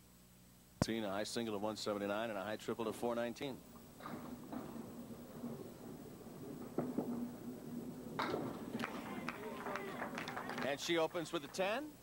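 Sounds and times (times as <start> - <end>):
bowling ball rolling on wooden lane: 2.8 - 10.8
crowd cheering: 8.2 - 11.6.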